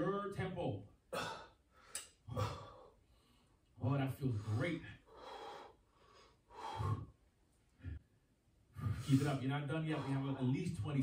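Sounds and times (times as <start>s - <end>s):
woman breathing hard: 5.1s - 7.2s.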